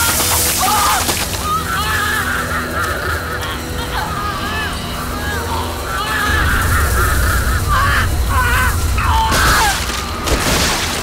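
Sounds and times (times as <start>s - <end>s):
voices screaming: 0.0s - 10.2s
deep steady drone: 2.8s - 10.6s.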